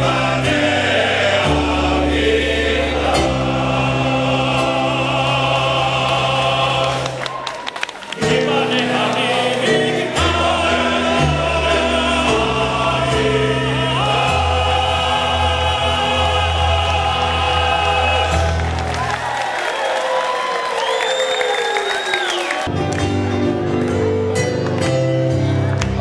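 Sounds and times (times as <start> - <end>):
men's choir singing in harmony: 0.0 - 7.3, 8.1 - 18.9
crowd noise: 0.0 - 26.0.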